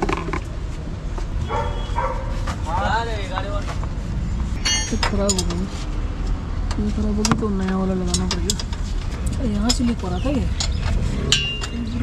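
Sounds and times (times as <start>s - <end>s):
steady low rumble: 3.2s - 12.0s
metallic clinks of spanners: 4.6s - 5.5s.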